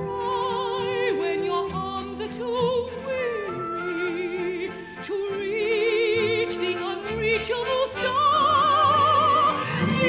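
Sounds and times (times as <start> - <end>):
operatic soprano singing: 0.0 - 10.0.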